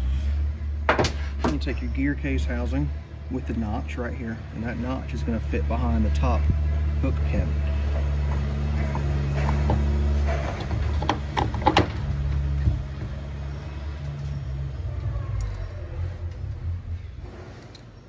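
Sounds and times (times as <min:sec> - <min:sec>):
low engine-like rumble: 0:00.0 - 0:18.0
metal clicks and knocks: 0:08.3 - 0:12.4.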